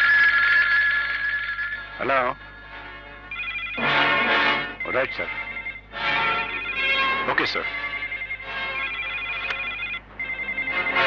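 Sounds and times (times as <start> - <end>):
desk telephone ringing: 3.3 - 11.0.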